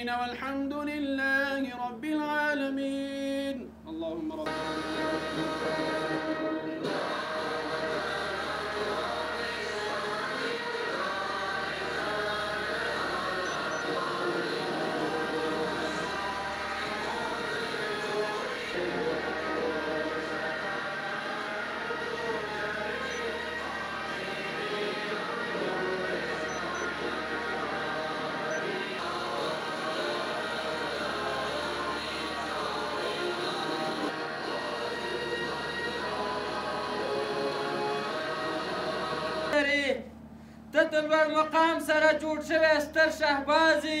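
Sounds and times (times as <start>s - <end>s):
choir singing with music: 4.4s - 39.8s.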